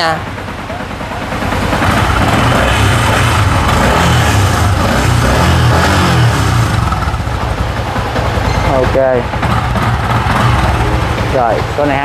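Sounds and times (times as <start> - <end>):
motorcycle engine idling: 0.0 - 12.0.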